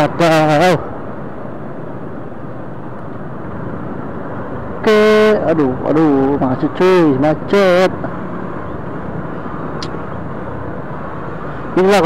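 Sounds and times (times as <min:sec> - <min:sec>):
traffic jam engines idling: 0:00.0 - 0:12.0.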